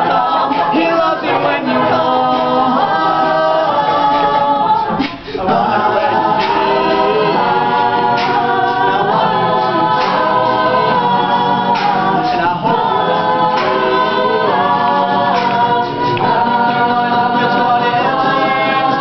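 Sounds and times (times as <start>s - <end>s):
group singing backing chords: 0.0s - 19.0s.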